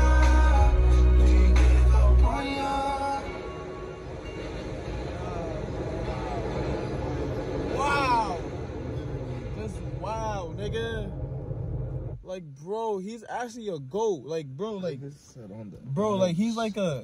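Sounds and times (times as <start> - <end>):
low rumble inside a car: 0.0 - 17.0
man shouting excitedly: 7.7 - 8.5.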